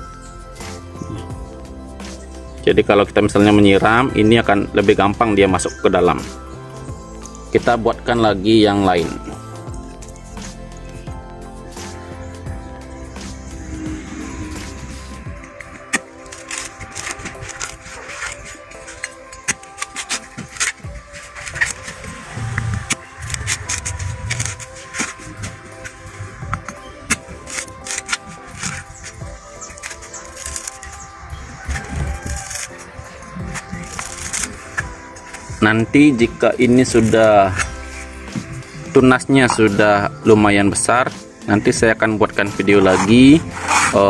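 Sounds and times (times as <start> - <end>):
background music: 0.0 - 44.0
machete chopping coconut husk: 15.6 - 31.1.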